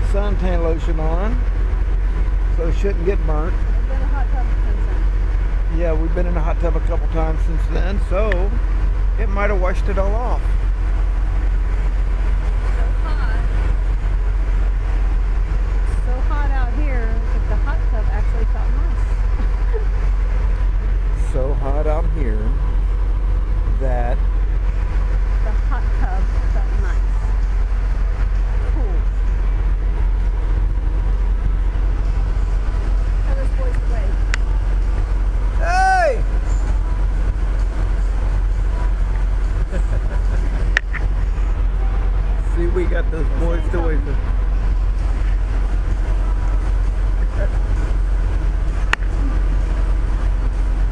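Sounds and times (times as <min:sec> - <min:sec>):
steady low rumble: 0:00.0 - 0:50.9
faint voices: 0:02.0 - 0:05.1, 0:05.7 - 0:08.6, 0:09.2 - 0:10.5, 0:21.1 - 0:22.7, 0:23.7 - 0:24.2, 0:37.8 - 0:44.2.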